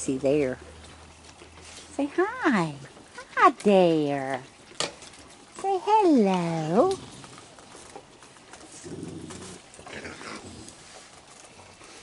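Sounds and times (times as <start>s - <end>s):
raccoon growl: 6.6s - 7.6s, 8.7s - 11.0s.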